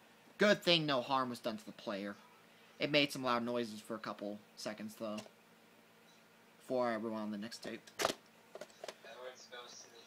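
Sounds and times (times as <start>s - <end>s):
cassette being handled: 7.6s - 9.0s.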